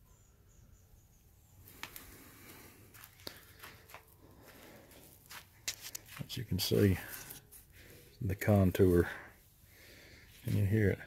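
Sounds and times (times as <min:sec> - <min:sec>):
faint rustling: 0:01.6 - 0:11.0.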